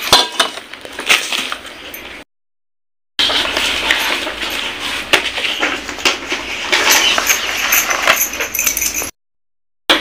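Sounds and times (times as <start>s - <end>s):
bangles clinking: 6.6s - 9.2s.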